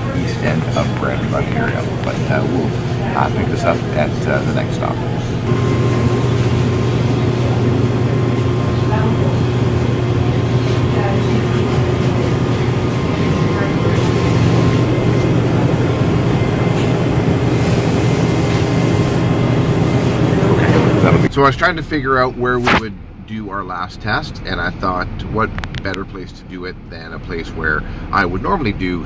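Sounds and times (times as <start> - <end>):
indistinct background voices: 0.0 - 21.3
faint high whine: 0.0 - 25.0
low mechanical hum: 0.0 - 29.0.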